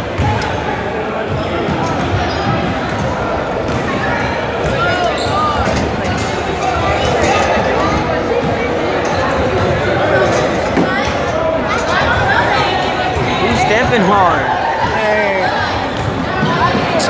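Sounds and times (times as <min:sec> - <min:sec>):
hubbub of voices: 0:00.0 - 0:17.0.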